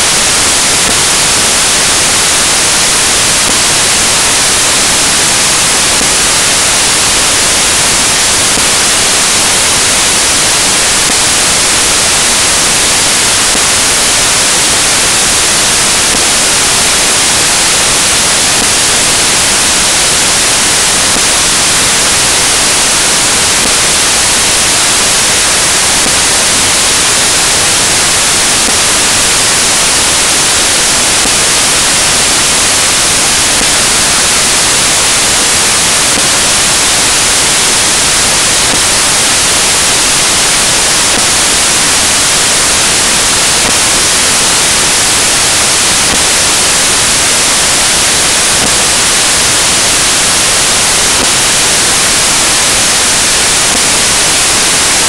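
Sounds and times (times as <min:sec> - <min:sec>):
loud steady static hiss: 0:00.0 - 0:55.0.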